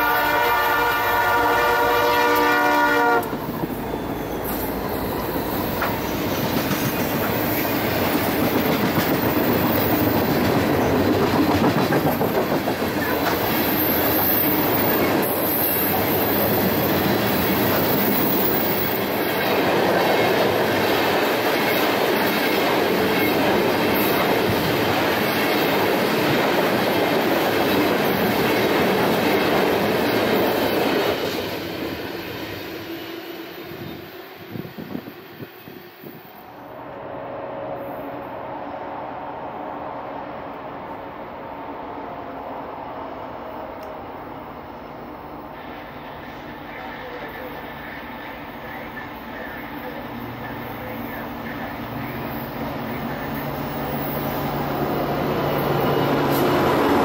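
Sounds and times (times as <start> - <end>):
train air horn: 0.0 - 3.4, 35.6 - 41.0
freight train rumbling past: 0.0 - 57.0.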